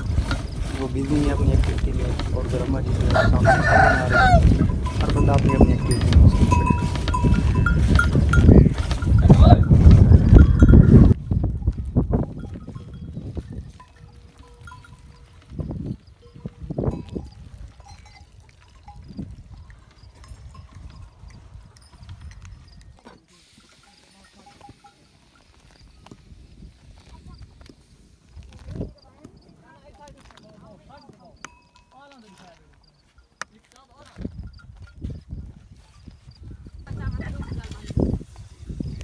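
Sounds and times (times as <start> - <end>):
cowbell clanking: 0.0 - 11.2, 12.2 - 25.8, 31.4 - 35.2
livestock moving about: 0.0 - 39.0.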